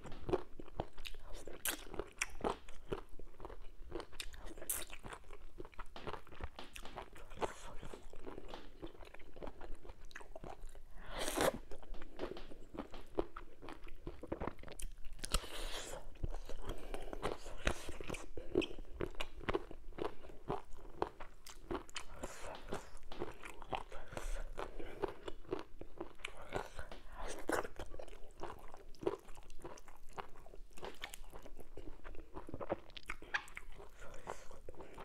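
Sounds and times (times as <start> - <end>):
person chewing wetly: 0.0 - 35.0.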